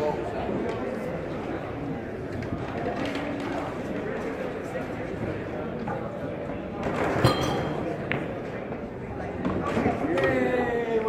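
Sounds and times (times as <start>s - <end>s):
indistinct chatter in a hall: 0.0s - 11.0s.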